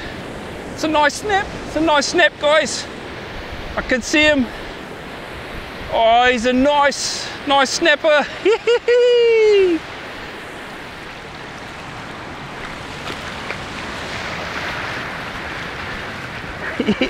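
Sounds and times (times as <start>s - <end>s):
ocean surf breaking on beach: 0.0s - 17.0s
man whooping: 8.4s - 9.8s.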